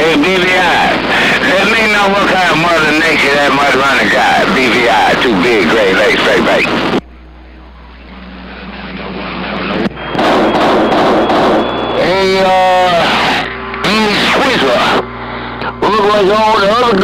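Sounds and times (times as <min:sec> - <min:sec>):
garbled radio voice: 0:00.0 - 0:07.0, 0:12.0 - 0:17.0
radio static hiss: 0:00.0 - 0:17.0
faint steady whistle: 0:09.8 - 0:13.6.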